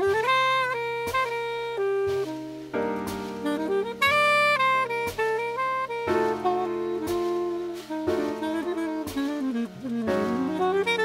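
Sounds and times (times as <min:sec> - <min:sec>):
backing chords and bass: 0:00.0 - 0:11.0
saxophone jazz ballad: 0:00.0 - 0:11.0
soft drum strokes: 0:00.0 - 0:11.0.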